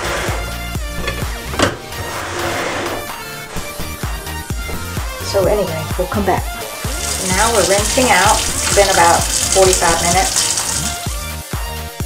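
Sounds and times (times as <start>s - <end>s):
background music with bass line: 0.0s - 12.0s.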